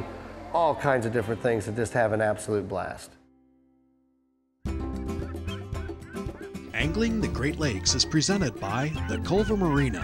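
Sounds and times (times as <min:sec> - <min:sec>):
instrumental theme music: 0:04.6 - 0:10.0
man speaking voice-over: 0:06.7 - 0:10.0.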